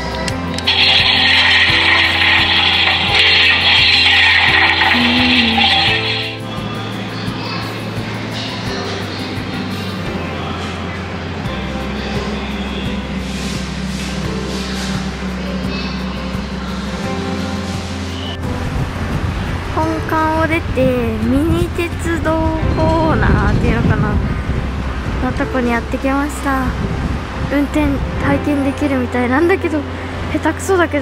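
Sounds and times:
background music: 0.0s - 31.0s.

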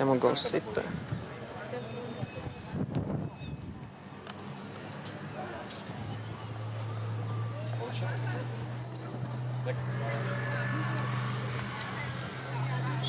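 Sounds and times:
faint voices talking: 0.0s - 13.0s.

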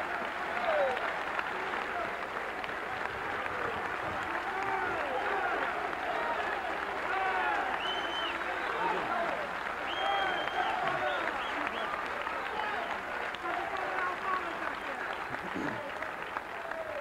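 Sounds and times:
audience applauding: 0.0s - 17.0s
voices calling out: 3.0s - 17.0s.

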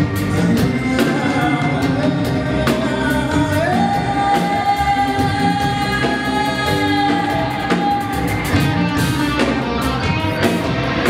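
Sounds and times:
drum kit with cymbals: 0.0s - 11.0s
live band music: 0.0s - 11.0s.

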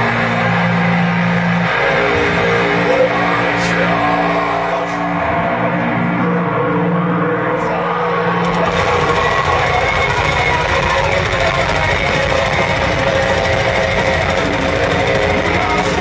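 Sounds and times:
metal band playing live: 0.0s - 16.0s.

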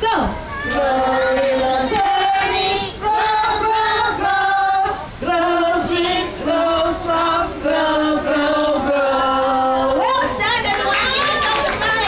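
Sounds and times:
children singing: 0.6s - 9.9s.

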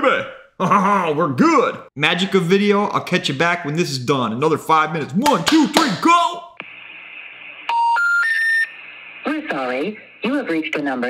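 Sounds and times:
rising telephone beeps: 7.7s - 8.8s.

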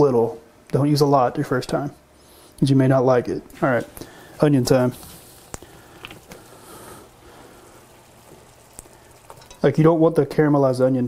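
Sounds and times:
sauce hissing in a pan: 3.9s - 10.8s.

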